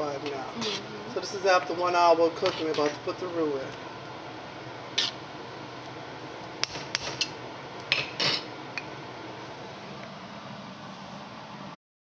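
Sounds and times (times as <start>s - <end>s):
steady background hum: 0.0s - 11.8s
utensil scraping: 0.3s - 1.0s, 2.4s - 3.0s, 5.0s - 5.2s.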